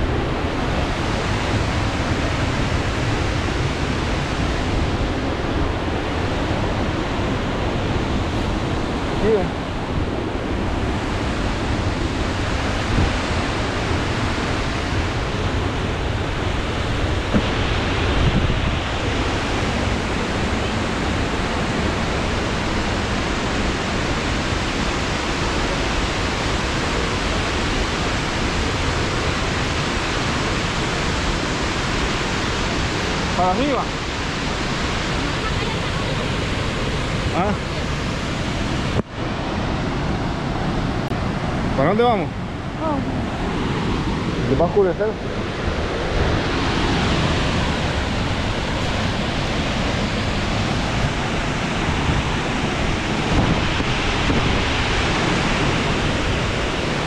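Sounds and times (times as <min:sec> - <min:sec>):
waterfall rushing: 0:00.0 - 0:57.0.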